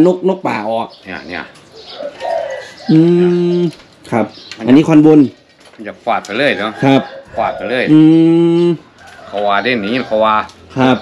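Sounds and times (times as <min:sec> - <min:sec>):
man humming: 0:02.9 - 0:03.8, 0:07.9 - 0:08.8.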